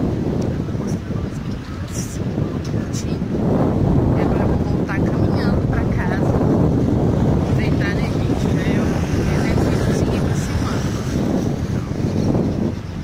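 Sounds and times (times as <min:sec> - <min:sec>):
faint voices: 0:00.0 - 0:06.7, 0:07.3 - 0:13.0
wind buffeting microphone: 0:00.0 - 0:13.0.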